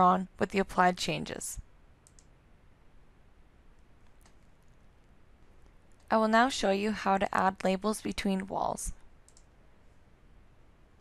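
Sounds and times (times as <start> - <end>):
faint computer mouse click: 2.0 - 2.3, 9.2 - 9.5.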